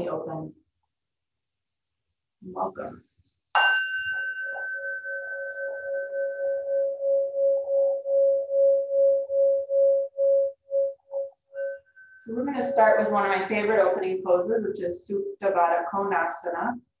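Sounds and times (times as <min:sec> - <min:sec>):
singing bowl ringing: 0:03.6 - 0:13.2.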